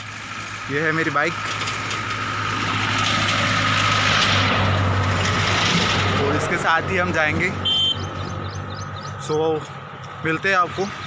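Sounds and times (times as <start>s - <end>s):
vehicle engine hum: 0.0s - 11.0s.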